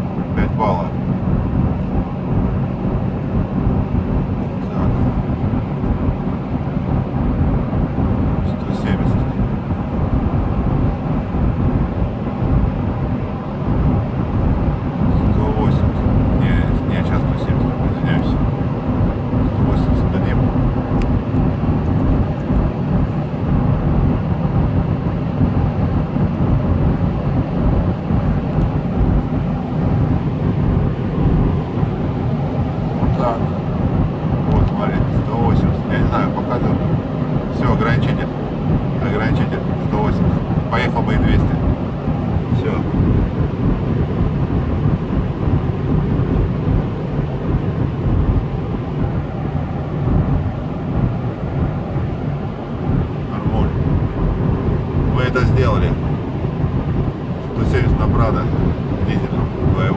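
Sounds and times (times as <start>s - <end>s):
diesel engine droning in car cabin: 0.0s - 59.9s
road noise: 0.0s - 59.9s
wind noise: 0.0s - 59.9s.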